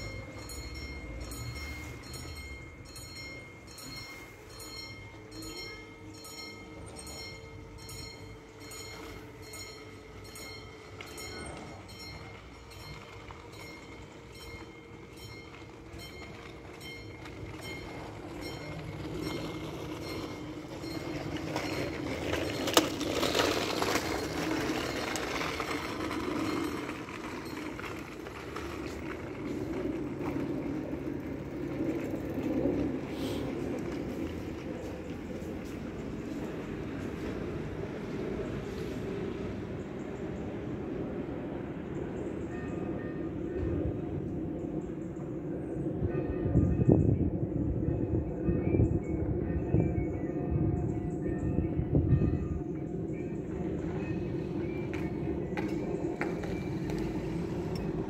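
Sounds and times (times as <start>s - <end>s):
level crossing warning bell: 0.0s - 38.4s, 52.1s - 58.0s
train rumble: 0.0s - 58.0s.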